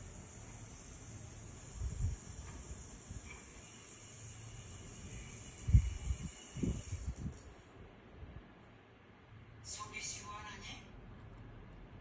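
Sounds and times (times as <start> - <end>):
steady high hiss: 0.0 - 10.5.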